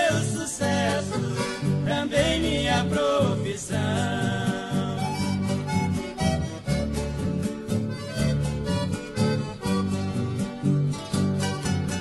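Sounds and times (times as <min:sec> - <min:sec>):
strummed guitar rhythm: 0:00.0 - 0:12.0
walking bass: 0:00.0 - 0:12.0
reedy lead melody: 0:04.8 - 0:12.0.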